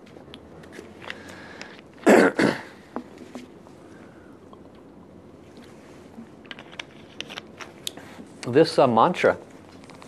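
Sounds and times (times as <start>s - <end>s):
man coughing: 2.0s - 2.8s.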